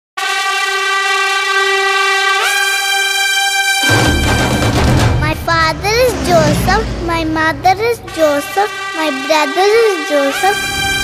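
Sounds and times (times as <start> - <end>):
loud horn-like tone: 0.2 - 11.0.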